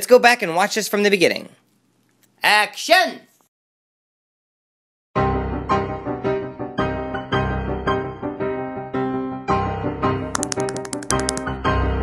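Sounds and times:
piano background music: 5.2s - 12.0s
sharp clicks: 10.4s - 11.5s.

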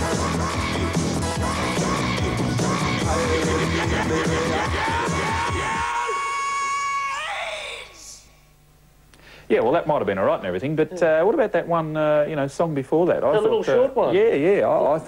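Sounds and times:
rock theme music: 0.0s - 5.8s.

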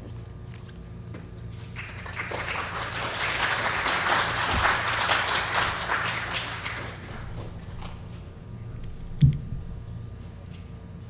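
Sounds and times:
audience applauding: 1.7s - 7.6s.

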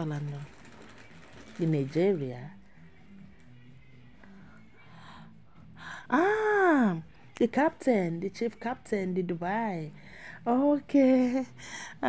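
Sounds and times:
woman breathing close to microphone: 4.2s - 6.1s, 10.0s - 10.4s, 11.6s - 12.0s.

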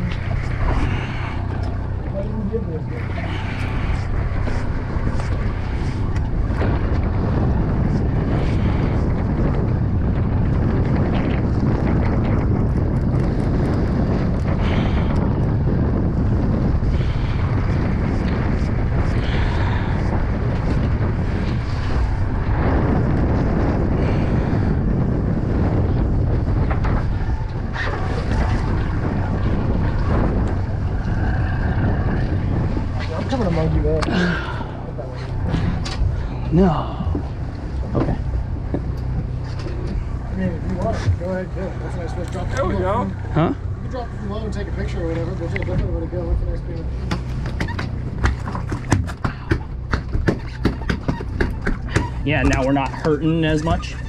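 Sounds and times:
choppy sea water: 0.0s - 54.0s
wind buffeting microphone: 0.0s - 54.0s.

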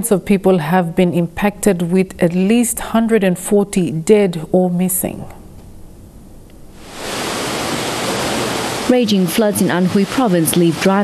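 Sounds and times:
floodwater rushing: 6.7s - 11.0s
narrator speaking: 8.9s - 11.0s.

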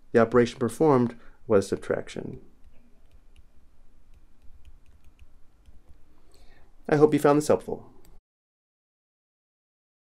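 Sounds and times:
low background hum: 0.0s - 8.2s
stylus tapping on tablet: 2.6s - 6.1s.

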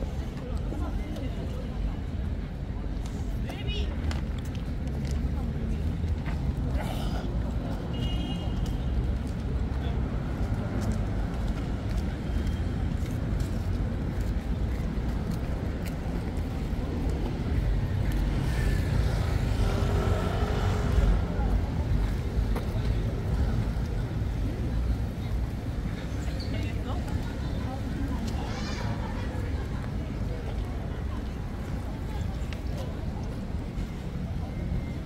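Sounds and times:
passers-by talking indistinctly: 0.0s - 35.0s
traffic rumble: 0.0s - 35.0s.

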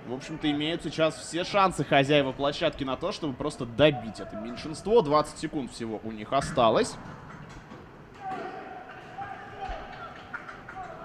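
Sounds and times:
hockey sticks and puck knocking: 7.0s - 11.0s.

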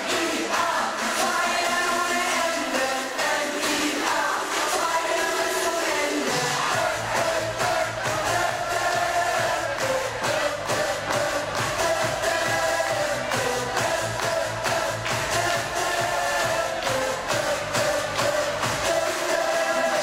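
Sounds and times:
up-tempo pop song with singing: 0.0s - 20.0s
deep bass line: 6.6s - 19.1s.

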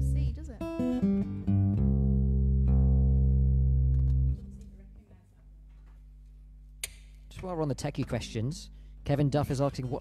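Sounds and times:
faint low electrical hum: 2.5s - 10.0s.

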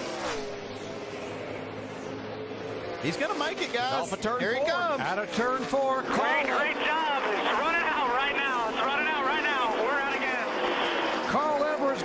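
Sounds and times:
race car engines droning: 0.0s - 12.0s.

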